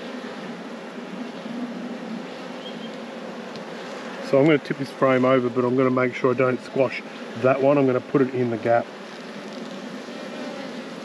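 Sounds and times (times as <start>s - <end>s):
honeybees humming: 0.0s - 11.0s.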